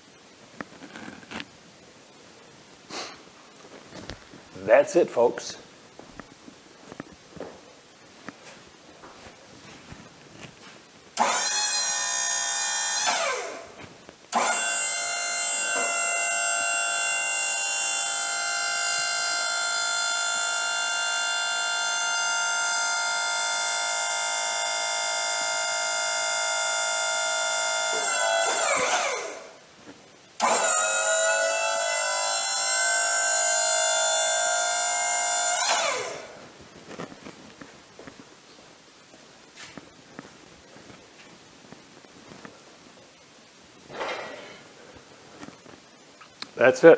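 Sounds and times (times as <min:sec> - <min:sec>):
hydraulic pump motor whining: 0:11.2 - 0:29.6, 0:30.4 - 0:36.4.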